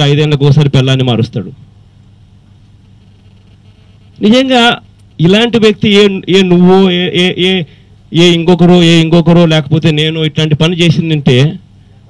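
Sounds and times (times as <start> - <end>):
low steady hum with hiss: 0.0 - 12.0.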